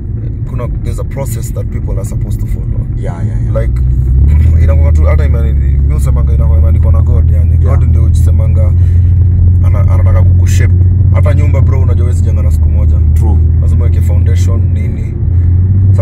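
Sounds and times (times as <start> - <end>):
car engine and road drone: 0.0 - 16.0
man talking: 0.5 - 8.9, 9.6 - 15.2.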